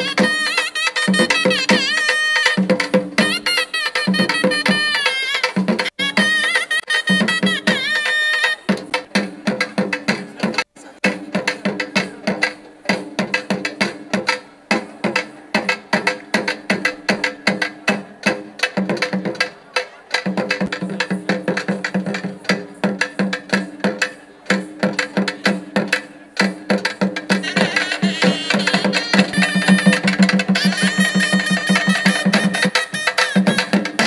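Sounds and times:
fast steady drumming: 0:00.0 - 0:34.0.

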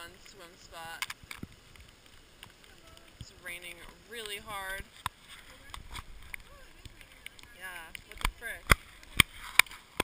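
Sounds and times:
rain tapping on camera housing: 0:00.0 - 0:10.0.

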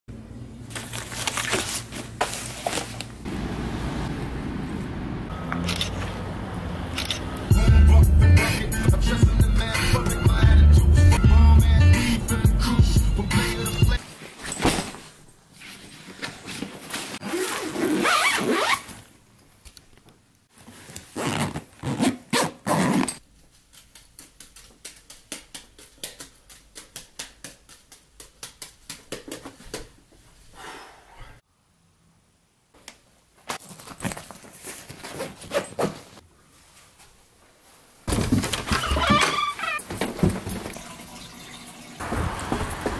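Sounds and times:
zipper being pulled: 0:17.2 - 0:19.0, 0:21.1 - 0:23.2
rustling and clicking of bag: 0:33.4 - 0:36.2.

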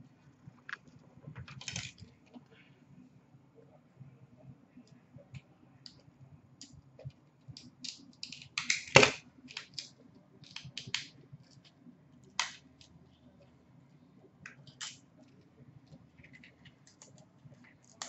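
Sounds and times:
cards clicking and rustling on glass: 0:01.4 - 0:02.1, 0:14.5 - 0:15.0, 0:15.9 - 0:18.0.

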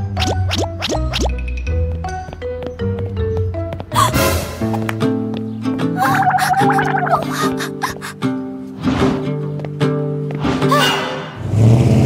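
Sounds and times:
warbling cartoon crying wail: 0:06.0 - 0:08.2.

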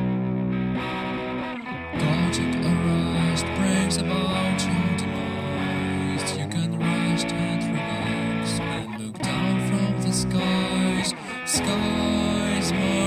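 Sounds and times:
guitar chords over bass: 0:00.0 - 0:13.0.

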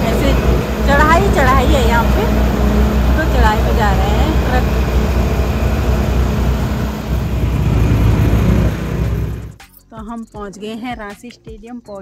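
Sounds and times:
traffic engines rumbling: 0:00.0 - 0:09.6.

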